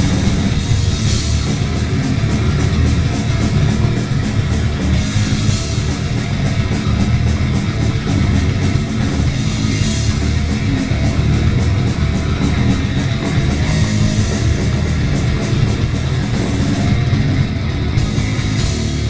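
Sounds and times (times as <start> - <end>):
distorted guitar and bass: 0.0 - 19.0
fast drumming with cymbals: 0.0 - 19.0.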